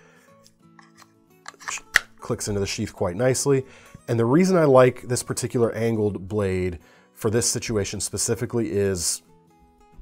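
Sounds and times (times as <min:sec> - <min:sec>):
knife clicking into sheath: 0:00.4 - 0:02.2
knife handling rattles: 0:00.8 - 0:02.0.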